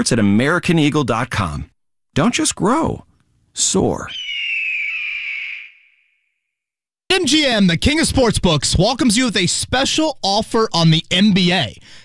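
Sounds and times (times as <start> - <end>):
eagle cry: 4.1 - 6.1.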